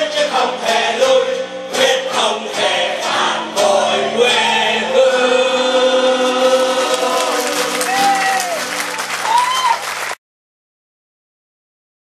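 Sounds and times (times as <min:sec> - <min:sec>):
mixed choir holding a chord: 0:00.0 - 0:09.1.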